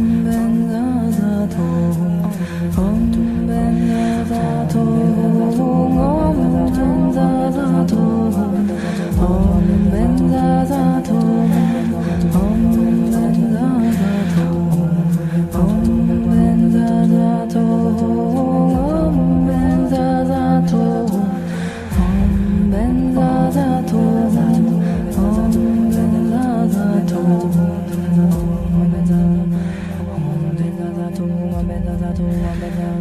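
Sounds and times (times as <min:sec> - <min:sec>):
layered voices holding wordless notes: 0:00.0 - 0:33.0
low drone: 0:00.0 - 0:33.0
person humming a slow melody: 0:00.0 - 0:33.0.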